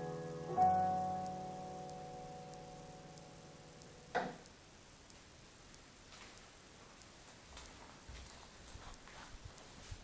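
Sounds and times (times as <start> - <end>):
sustained piano chord: 0.0 - 4.2
faint regular ticking: 0.0 - 9.9.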